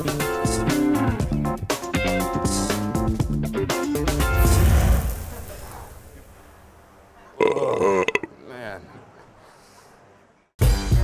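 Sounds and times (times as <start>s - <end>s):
man belching: 7.4s - 8.4s.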